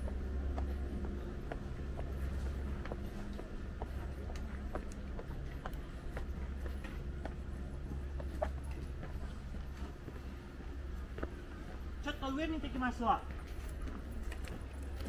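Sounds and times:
footsteps on stone: 0:00.0 - 0:12.0, 0:13.2 - 0:15.0
low steady hum: 0:00.0 - 0:15.0.

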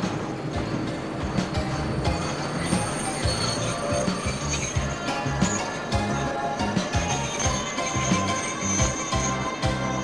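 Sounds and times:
train running rumble: 0:00.0 - 0:10.0
train wheels squealing: 0:02.0 - 0:10.0.

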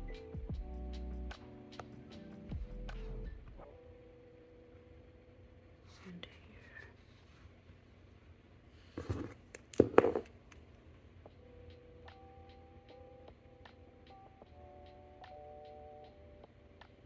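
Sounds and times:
soft music with ticking beat: 0:00.0 - 0:04.1, 0:11.2 - 0:17.0
rustling and knocks: 0:09.0 - 0:10.3.

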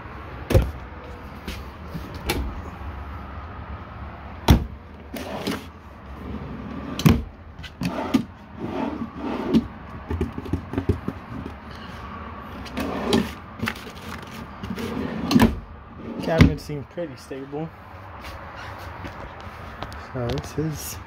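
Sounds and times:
wooden drawers opening and shutting: 0:02.0 - 0:02.6, 0:04.5 - 0:11.5, 0:12.6 - 0:16.6.

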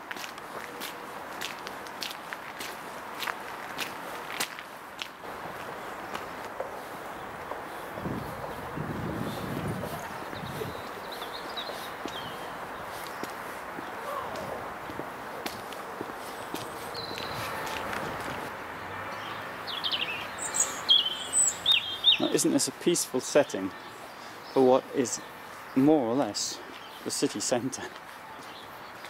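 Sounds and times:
footsteps on paved path: 0:00.0 - 0:29.0
outdoor background noise: 0:00.0 - 0:29.0
small birds chirping: 0:05.6 - 0:14.6, 0:15.2 - 0:17.8, 0:19.1 - 0:29.0.

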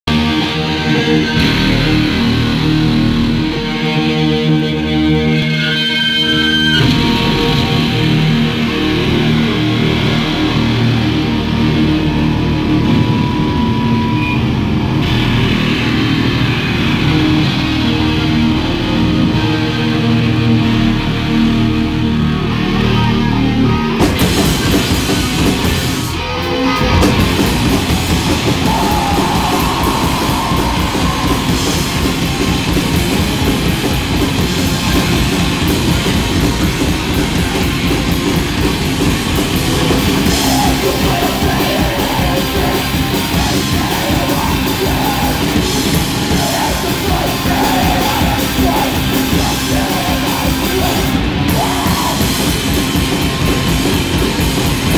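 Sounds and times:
electric guitars: 0:00.0 - 0:54.9
rock band playing live: 0:00.0 - 0:54.9
drum kit pounding: 0:24.0 - 0:26.2, 0:26.8 - 0:54.9.

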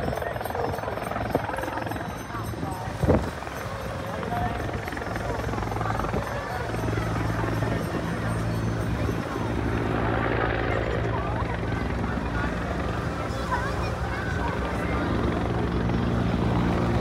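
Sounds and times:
helicopter hovering overhead: 0:00.0 - 0:17.0.

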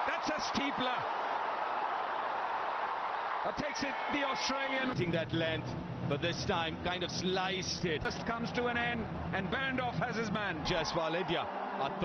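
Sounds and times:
large stadium crowd noise: 0:00.0 - 0:12.0.

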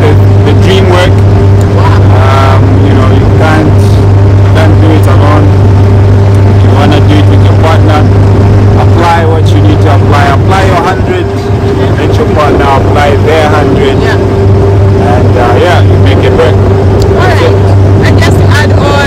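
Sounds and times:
people talking: 0:00.0 - 0:05.6, 0:06.5 - 0:08.2, 0:08.8 - 0:14.2, 0:15.0 - 0:19.0
motorboat engine drone: 0:00.0 - 0:19.0.

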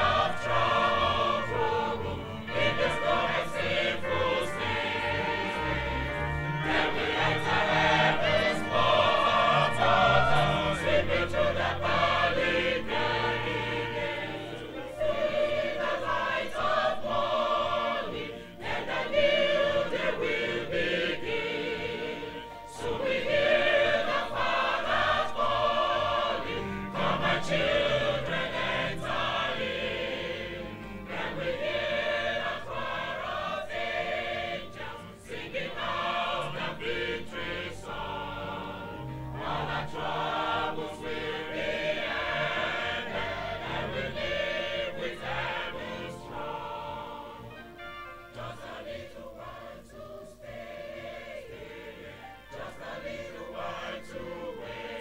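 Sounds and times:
choir singing a hymn: 0:00.0 - 0:55.0
organ holding low notes: 0:00.0 - 0:55.0.

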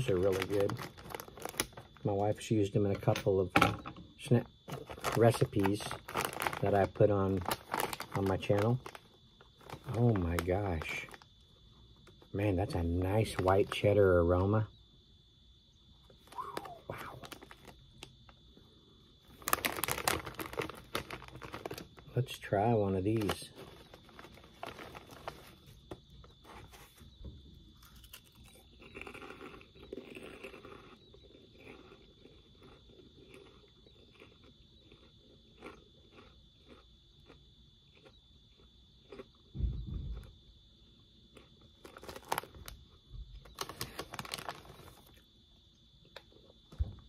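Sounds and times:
chewing crunchy snacks: 0:00.0 - 0:02.3, 0:04.4 - 0:14.0, 0:16.1 - 0:26.5, 0:27.7 - 0:40.4, 0:41.2 - 0:45.3
plastic snack bag crinkling: 0:00.0 - 0:02.4, 0:04.2 - 0:14.5, 0:16.0 - 0:27.0, 0:41.4 - 0:45.2.

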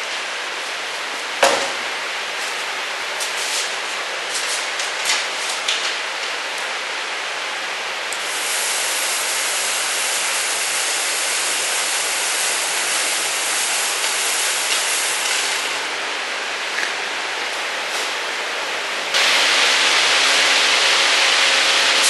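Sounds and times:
blown air hissing: 0:08.2 - 0:15.8, 0:19.2 - 0:22.0.

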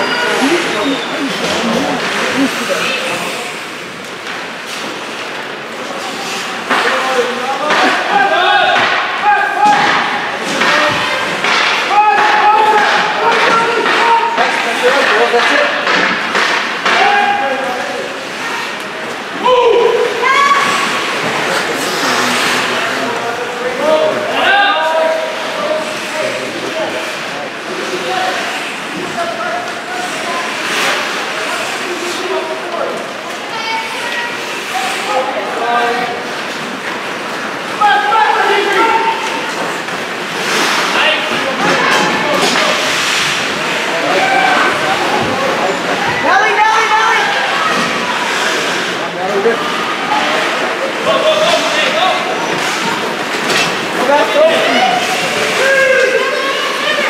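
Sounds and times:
spectators and players shouting: 0:00.0 - 0:03.5, 0:43.6 - 0:48.8, 0:49.6 - 0:57.0.

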